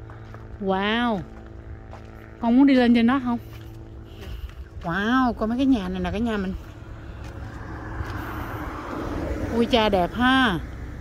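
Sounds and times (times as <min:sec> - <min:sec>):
tyre and road noise: 0:00.0 - 0:11.0
car driving past: 0:06.7 - 0:11.0.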